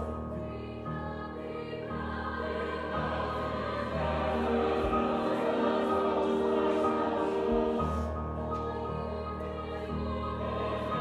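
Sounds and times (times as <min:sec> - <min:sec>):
choir singing: 0:00.0 - 0:11.0
grand piano: 0:00.0 - 0:11.0.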